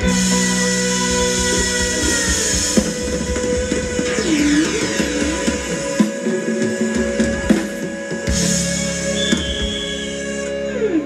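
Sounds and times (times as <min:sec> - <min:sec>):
live band playing dance music: 0:00.0 - 0:11.0.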